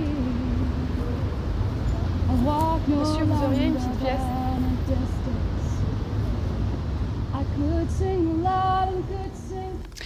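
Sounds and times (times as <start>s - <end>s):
woman singing: 0.0s - 1.0s, 2.3s - 5.8s, 7.3s - 10.0s
low street rumble: 0.0s - 10.0s.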